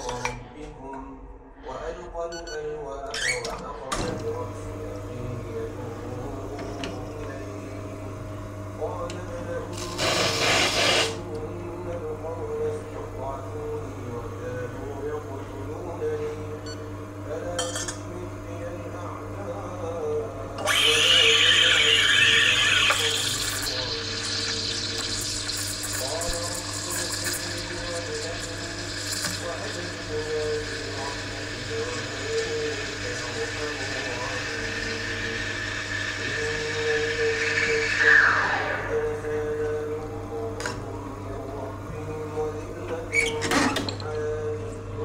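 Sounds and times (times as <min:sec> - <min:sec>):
steam wand hissing in milk: 0:09.9 - 0:11.2, 0:20.7 - 0:39.4.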